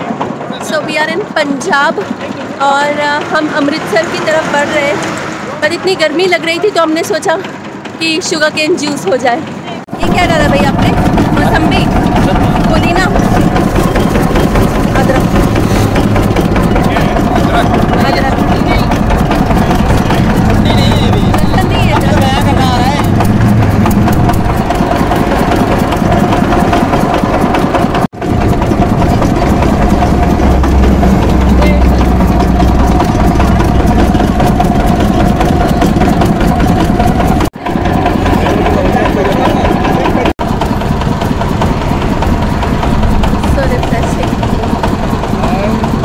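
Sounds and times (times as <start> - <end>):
juice crusher motor and rollers: 0.0 - 46.0.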